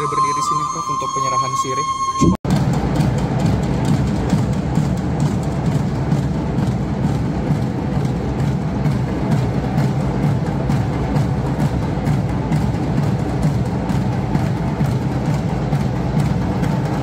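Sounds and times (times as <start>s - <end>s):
drums and percussion music: 0.0s - 17.0s.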